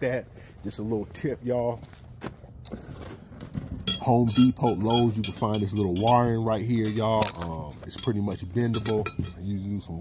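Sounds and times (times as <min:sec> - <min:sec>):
wire clicking and clinking: 0:03.8 - 0:09.5.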